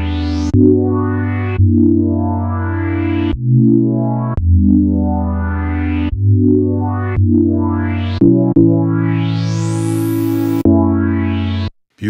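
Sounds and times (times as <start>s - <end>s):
synthesizer bass chords: 0.0s - 11.8s.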